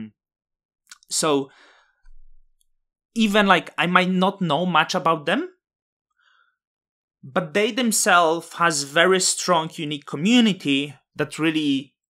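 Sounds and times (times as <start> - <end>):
man speaking: 0.9 - 1.5, 3.2 - 5.5, 7.3 - 11.9
faint breath: 1.5 - 2.1, 6.1 - 6.6.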